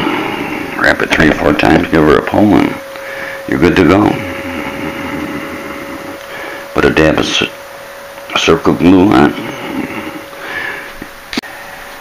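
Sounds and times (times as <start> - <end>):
household machine humming: 0.0 - 12.0.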